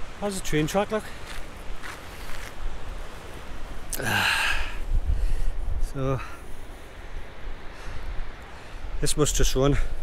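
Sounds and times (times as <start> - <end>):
wind buffeting microphone: 4.5 - 10.0.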